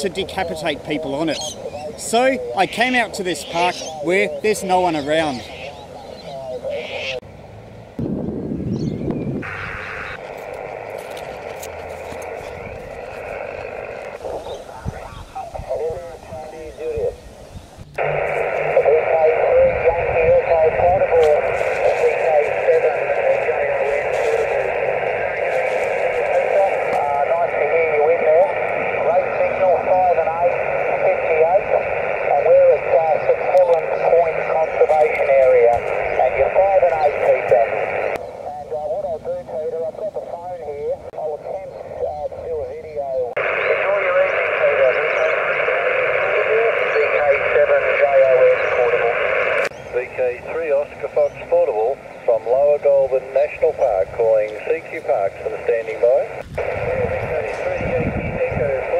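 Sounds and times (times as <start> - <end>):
radio band noise: 0.0 - 7.2, 9.3 - 58.9
radio speech through speaker: 0.0 - 7.2, 9.4 - 17.2, 18.0 - 58.9.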